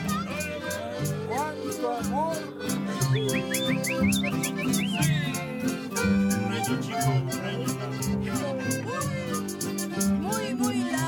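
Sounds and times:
acoustic guitars strumming: 0:00.0 - 0:11.0
button accordion melody: 0:00.0 - 0:11.0.

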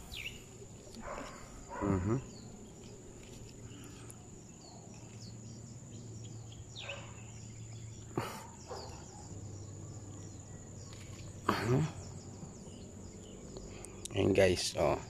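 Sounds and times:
person humming: 0:01.8 - 0:02.3.

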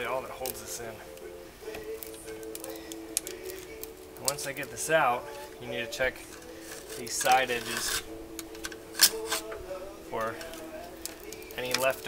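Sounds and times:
screwdriver scraping metal: 0:06.3 - 0:09.6.

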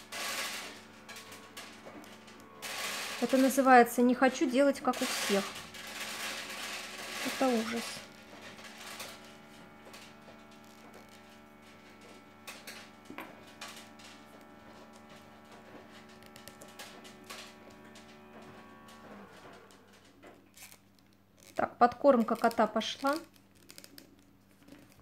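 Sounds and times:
cat feeder humming: 0:00.0 - 0:25.0
paper tubes clicking: 0:00.0 - 0:25.0.

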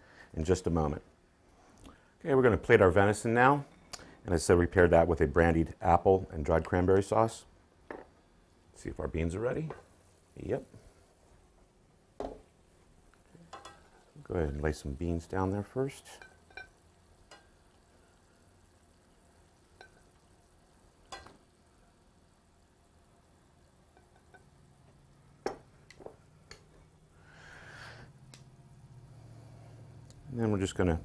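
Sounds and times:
metal tongs clicking on pan: 0:13.5 - 0:14.0, 0:16.2 - 0:17.6, 0:21.1 - 0:21.4.

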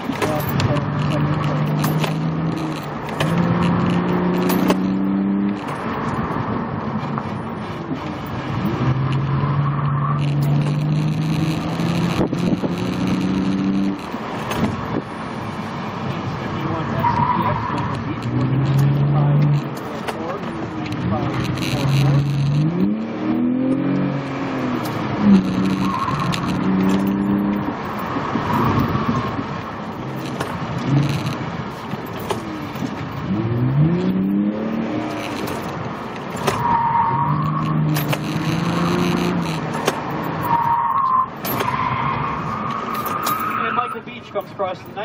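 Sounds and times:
car engine accelerating: 0:00.0 - 0:44.0.

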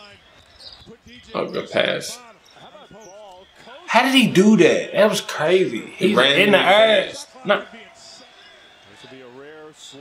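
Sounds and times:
commentator speaking: 0:01.0 - 0:02.2, 0:03.0 - 0:07.9.

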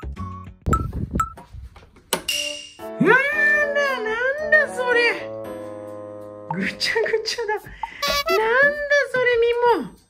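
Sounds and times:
background music: 0:00.0 - 0:01.6, 0:02.2 - 0:10.0.

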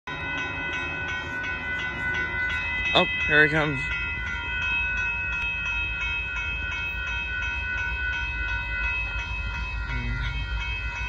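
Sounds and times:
railroad crossing bell ringing: 0:00.0 - 0:11.0.

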